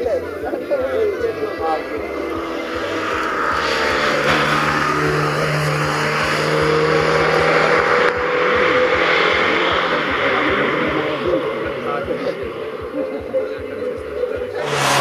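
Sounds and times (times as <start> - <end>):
car engine revving hard: 1.5 - 13.8, 14.4 - 15.0.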